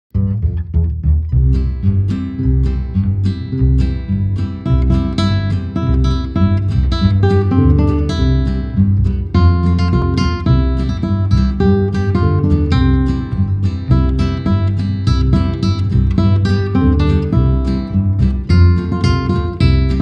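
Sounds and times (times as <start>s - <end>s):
classical guitar: 0.1s - 20.0s
plucked upright bass: 0.1s - 20.0s.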